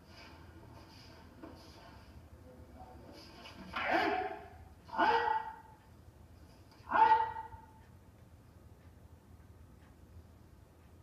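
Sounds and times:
martial arts shouts: 0:03.7 - 0:05.8, 0:06.8 - 0:07.8.

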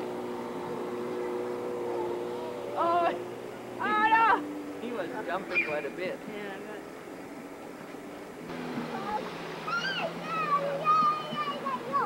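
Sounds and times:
steady low hum: 0:00.0 - 0:12.0
children shouting: 0:08.9 - 0:12.0.

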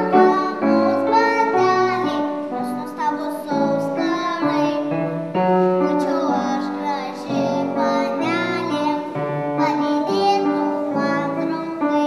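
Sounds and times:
girl singing: 0:00.0 - 0:12.0
piano accompaniment: 0:00.0 - 0:12.0.

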